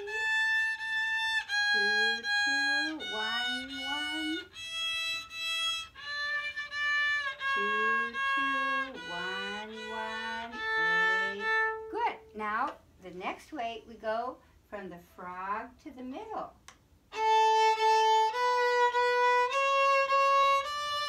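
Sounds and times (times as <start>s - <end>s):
violin playing sustained notes: 0.0s - 12.3s, 17.1s - 21.0s.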